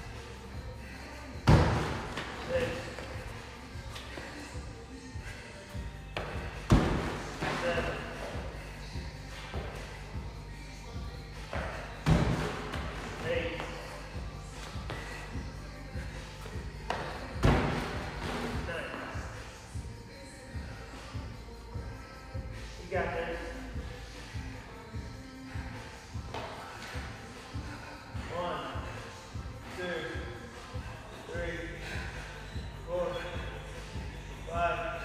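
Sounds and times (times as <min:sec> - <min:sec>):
background music: 0:00.0 - 0:35.0
body thudding on gym floor: 0:01.4 - 0:02.3, 0:16.9 - 0:18.5.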